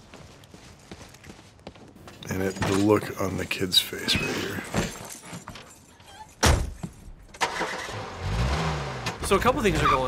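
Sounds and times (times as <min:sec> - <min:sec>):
car engine starting and revving: 0:07.4 - 0:10.0.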